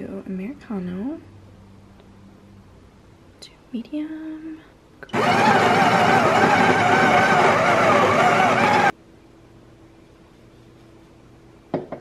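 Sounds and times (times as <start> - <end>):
coffee grinder grinding beans: 5.1 - 8.9.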